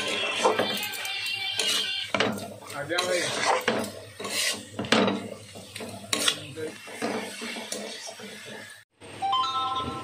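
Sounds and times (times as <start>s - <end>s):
metal spatula scraping pan: 0.0s - 8.9s
light sizzle: 0.0s - 9.9s.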